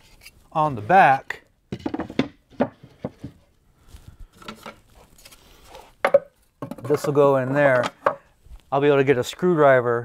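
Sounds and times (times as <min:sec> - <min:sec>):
wooden panels knocking: 0:01.7 - 0:03.4, 0:06.0 - 0:07.2, 0:07.8 - 0:08.2.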